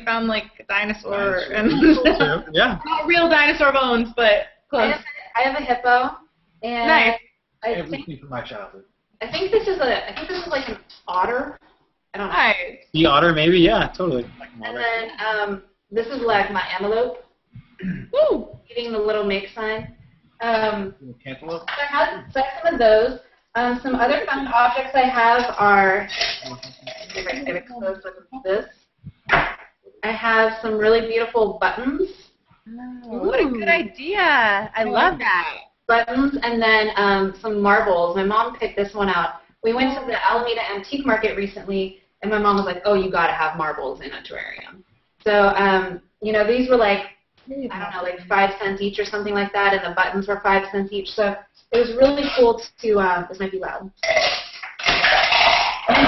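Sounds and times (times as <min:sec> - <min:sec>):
trinkets clattering and rattling: 0:25.3 - 0:27.6.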